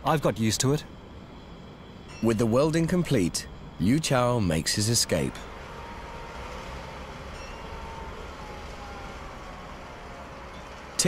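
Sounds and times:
construction site rumble: 0.0 - 11.0.

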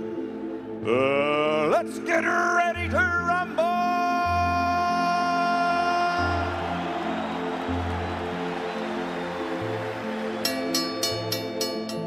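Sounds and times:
arena crowd rushing noise: 5.6 - 10.5.

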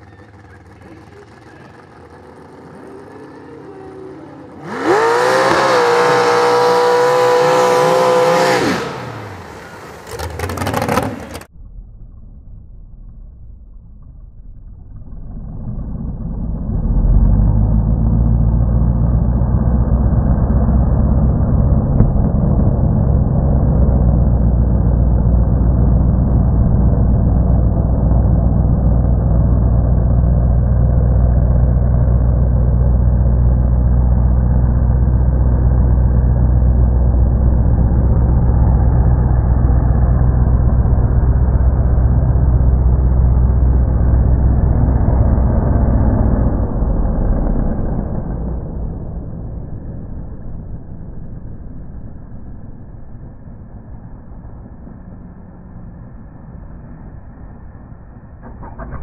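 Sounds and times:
tires churning mud and water: 0.0 - 11.5, 14.6 - 59.0
truck engine running hard: 0.0 - 11.5, 15.3 - 59.0.

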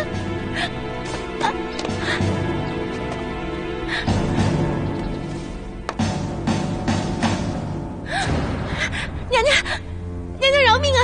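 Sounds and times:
woman gasping and whimpering: 0.0 - 2.6
low music bed: 0.0 - 11.0.

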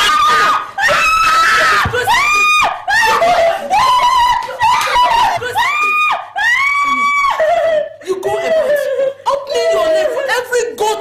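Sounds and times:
woman screaming: 0.0 - 8.8.

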